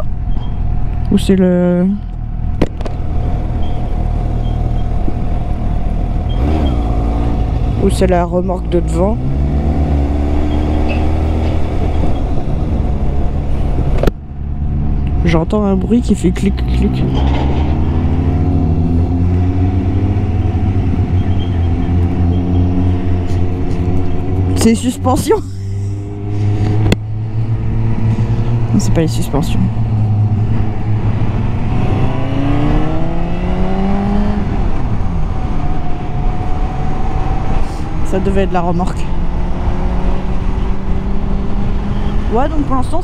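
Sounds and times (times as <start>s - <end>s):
motorcycle engine cruising: 0.0s - 43.0s.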